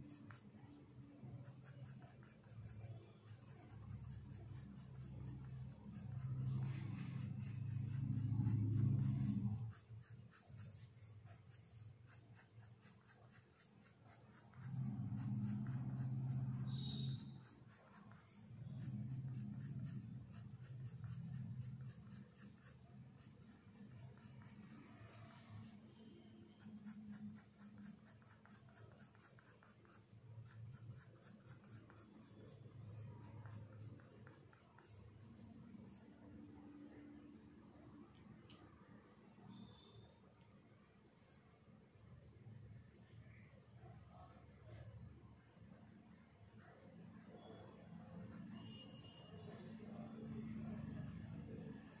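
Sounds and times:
pencil scratching on paper: 0.0s - 36.4s, 46.5s - 49.8s.

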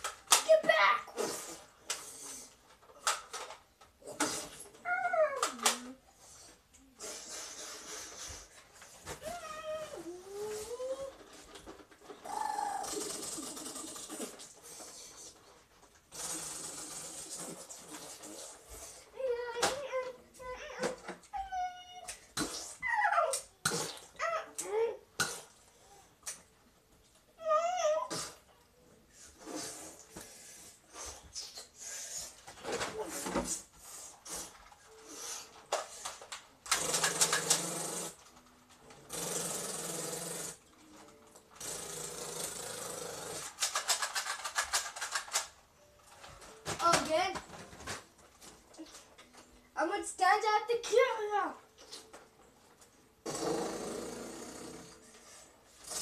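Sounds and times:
boy yelling: 0.4s - 1.1s
rapid crackly clicking: 36.0s - 40.6s, 41.5s - 45.6s.

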